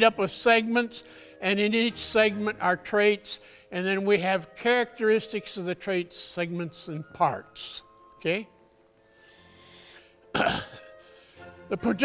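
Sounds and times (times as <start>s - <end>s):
faint breath: 1.0s - 1.4s, 3.4s - 3.7s, 9.0s - 10.2s, 11.0s - 11.6s
man coughing: 10.3s - 11.0s.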